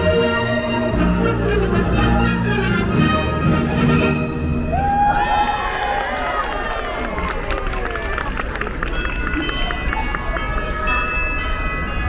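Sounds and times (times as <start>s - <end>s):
parade music over loudspeakers: 0.0s - 4.7s
crowd chatter: 0.0s - 12.0s.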